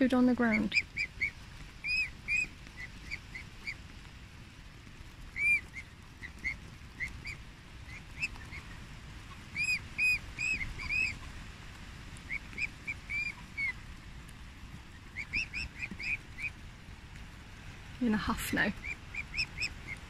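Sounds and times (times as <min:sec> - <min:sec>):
cygnets peeping: 0:00.2 - 0:03.9, 0:05.0 - 0:11.4, 0:12.2 - 0:14.0, 0:14.8 - 0:16.6, 0:18.2 - 0:20.0.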